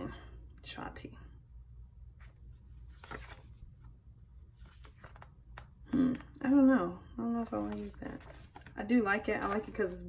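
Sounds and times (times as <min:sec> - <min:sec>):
low steady hum: 0:00.0 - 0:10.0
paper rustling: 0:02.2 - 0:05.7, 0:07.4 - 0:10.0.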